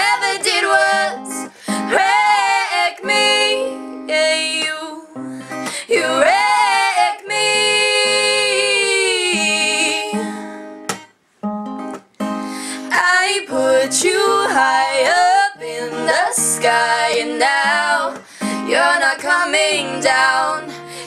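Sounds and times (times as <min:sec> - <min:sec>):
women singing together: 0:00.0 - 0:10.4, 0:12.9 - 0:21.0
strummed acoustic guitar: 0:00.0 - 0:21.0.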